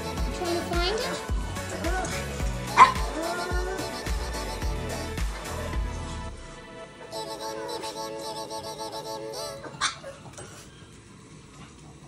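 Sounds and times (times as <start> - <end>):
tv show music: 0.0 - 10.2
dog barking sharply: 2.8 - 3.0.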